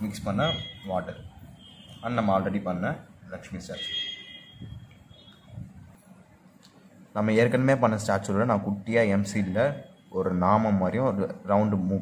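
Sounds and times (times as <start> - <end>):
faint high-pitched tone: 0.0 - 2.8, 3.6 - 6.2, 9.0 - 10.7.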